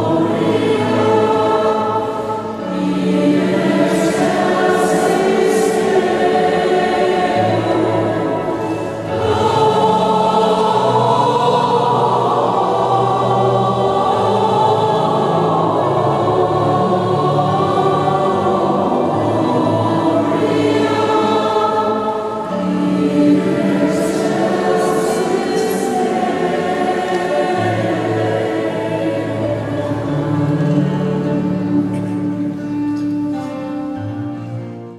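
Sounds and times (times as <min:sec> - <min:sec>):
mixed choir singing: 0:00.0 - 0:34.0.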